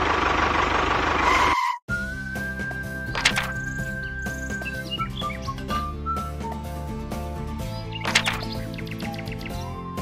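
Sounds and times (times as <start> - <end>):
background music: 1.9 - 10.0
bird chirps: 3.2 - 5.9, 7.6 - 9.8.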